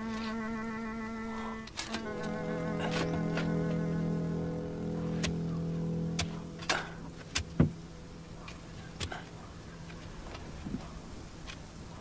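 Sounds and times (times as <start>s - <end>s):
low orchestral score notes: 1.9s - 8.9s.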